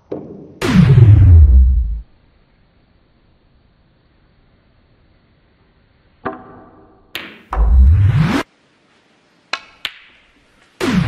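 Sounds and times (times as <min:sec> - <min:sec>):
bassy swooping sounds: 0:00.6 - 0:02.0, 0:07.6 - 0:08.5, 0:10.8 - 0:11.0
snooker balls clicking: 0:06.2 - 0:07.5.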